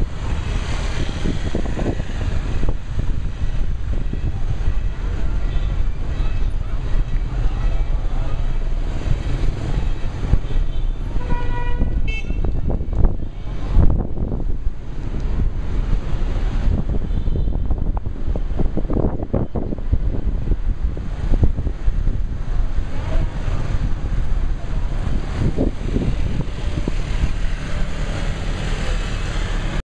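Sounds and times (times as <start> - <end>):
traffic rumble: 0.0 - 29.8
car horn: 9.8 - 13.5, 17.0 - 17.7
motor scooters passing: 22.6 - 29.8.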